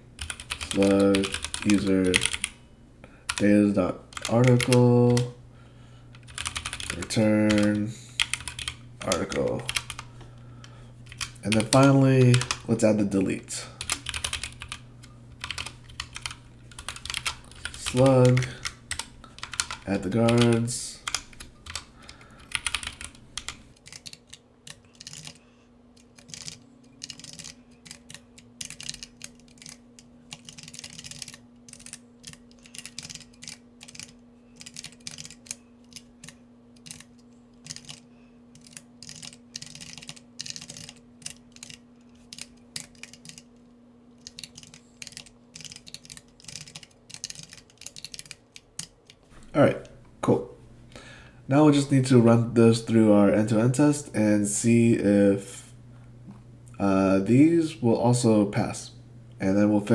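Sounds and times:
faint steady hum: 0.0s - 59.9s
keyboard typing: 0.2s - 2.6s, 4.1s - 5.3s, 6.1s - 10.1s, 11.1s - 12.7s, 13.8s - 14.8s, 15.4s - 25.4s, 26.0s - 43.6s, 44.2s - 49.2s.

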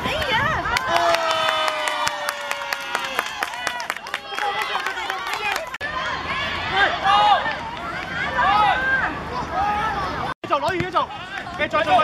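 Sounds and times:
children shouting: 0.2s - 10.4s.

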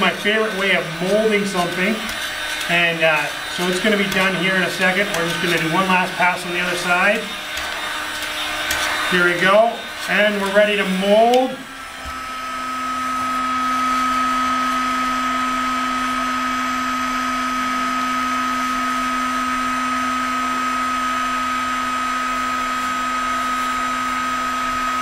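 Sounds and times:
heat gun whirring: 0.0s - 25.0s.

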